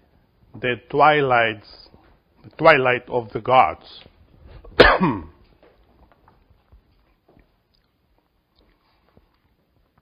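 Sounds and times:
man coughing: 4.8 - 5.4.

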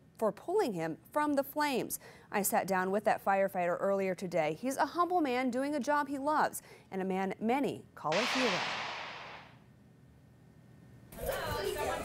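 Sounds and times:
whoosh sound effect: 8.1 - 9.5.

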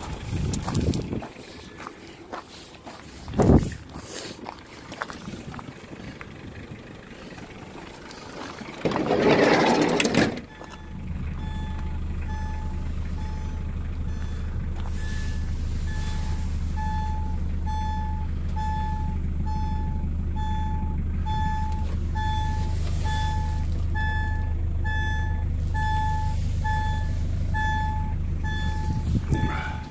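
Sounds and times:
vehicle engine idling: 0.0 - 29.9
repeating warning beep: 10.5 - 29.9.

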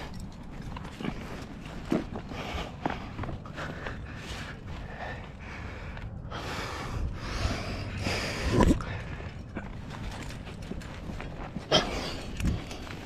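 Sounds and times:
climber breathing hard: 0.0 - 13.0.

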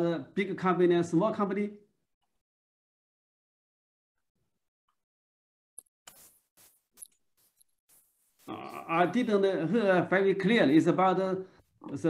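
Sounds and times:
man speaking hesitantly: 8.5 - 10.0.

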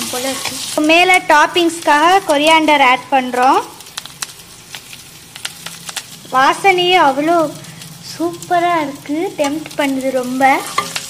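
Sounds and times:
food sizzling in oil: 0.0 - 11.0
sharp pops and crackles: 0.1 - 11.0.

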